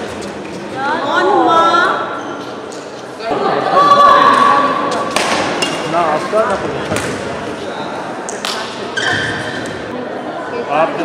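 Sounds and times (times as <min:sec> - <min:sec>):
voices calling out in echoing hall: 0:00.0 - 0:11.0.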